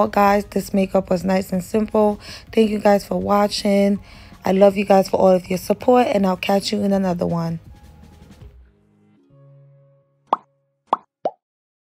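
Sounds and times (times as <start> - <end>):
pop sound effects: 10.3 - 11.4.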